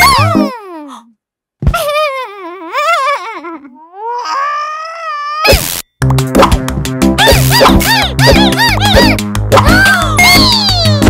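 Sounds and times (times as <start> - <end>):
cartoon music: 0.0 - 0.6, 6.1 - 11.0
cartoon character whining: 0.0 - 0.9, 1.8 - 5.6, 7.2 - 11.0.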